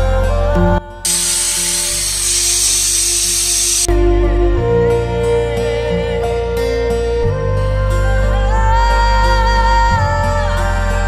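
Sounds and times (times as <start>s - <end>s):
pressure cooker whistling: 1.1s - 3.9s.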